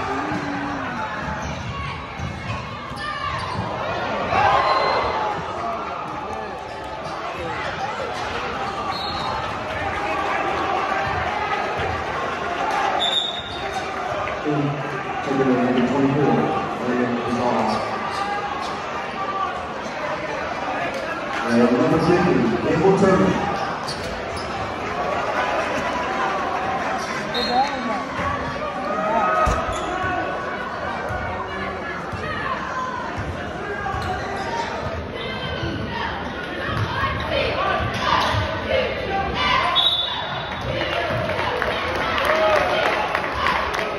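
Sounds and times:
crowd chatter: 0.0 - 43.9
voices of players and spectators: 0.0 - 43.9
shoe squeaks: 8.9 - 9.4, 13.0 - 13.8, 23.6 - 24.6, 27.3 - 27.9.

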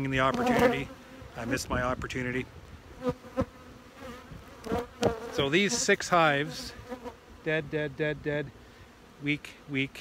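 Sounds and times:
bees buzzing: 0.0 - 10.0.

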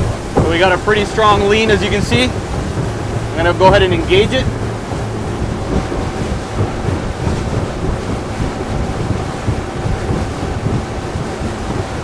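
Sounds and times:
boat engine drone: 0.0 - 12.0
water rushing past hull: 0.0 - 12.0
wind buffeting microphone: 0.0 - 12.0.

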